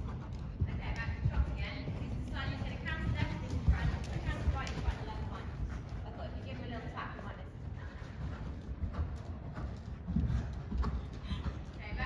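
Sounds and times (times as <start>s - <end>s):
horse hoofbeats on sand: 0.0s - 12.0s
woman talking: 0.7s - 8.0s, 11.8s - 12.0s.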